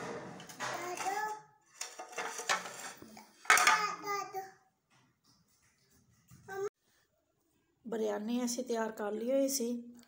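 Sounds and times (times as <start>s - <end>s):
dishes and cutlery clinking: 1.8s - 4.0s.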